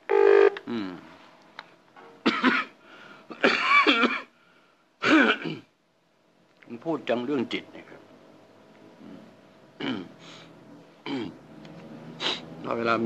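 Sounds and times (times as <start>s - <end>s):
man clearing throat and coughing: 2.2s - 4.3s, 5.0s - 5.8s, 9.8s - 10.2s, 11.0s - 11.4s.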